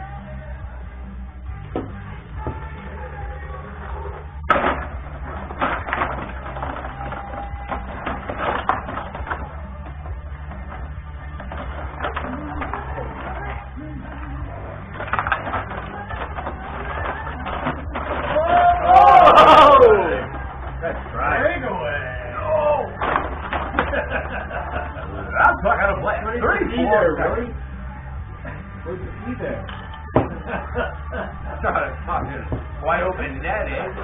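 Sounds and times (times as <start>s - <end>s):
background music: 0.0s - 34.0s
rod hockey table clacking: 4.5s - 13.6s.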